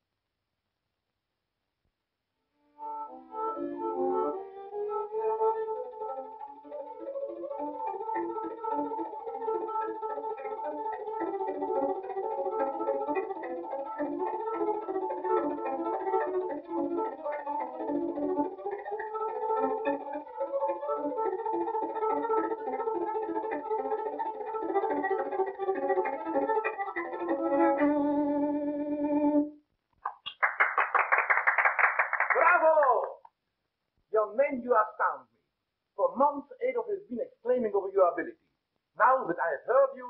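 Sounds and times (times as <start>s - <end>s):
violin melody: 2.5s - 29.6s.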